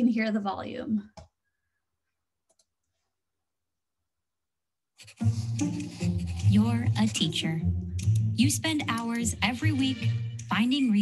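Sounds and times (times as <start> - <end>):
computer mouse clicks: 2.4 - 3.0.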